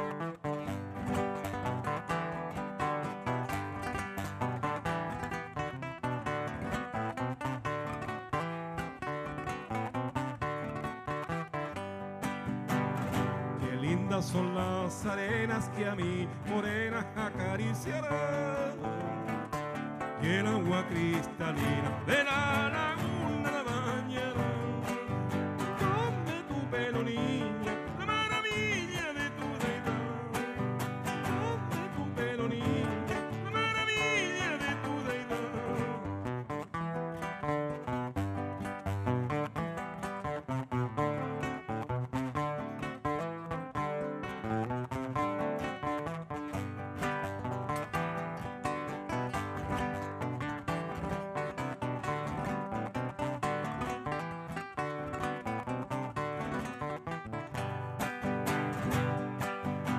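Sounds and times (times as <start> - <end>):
acoustic guitars playing folk: 0.0 - 59.9
person singing wavering notes: 20.4 - 36.4.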